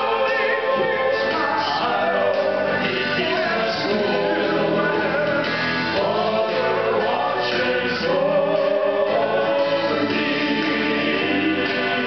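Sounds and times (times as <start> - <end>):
men singing in close harmony: 0.0 - 12.0.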